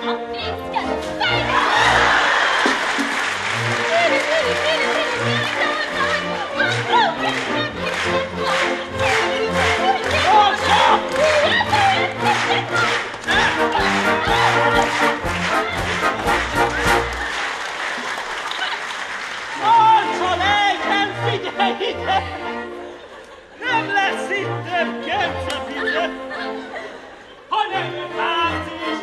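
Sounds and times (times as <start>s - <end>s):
theatre orchestra playing: 0.0s - 29.0s
audience applauding: 1.4s - 20.9s.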